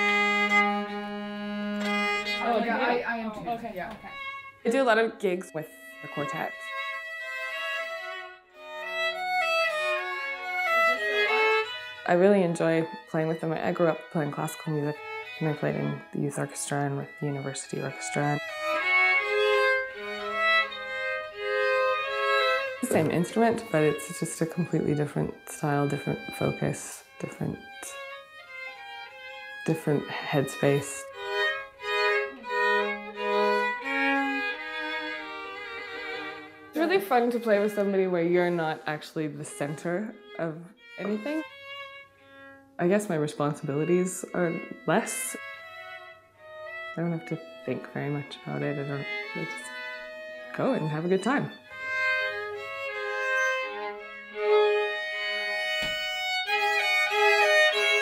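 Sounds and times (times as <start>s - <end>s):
bowed violin: 0.0s - 58.0s
lower strings: 0.0s - 58.0s.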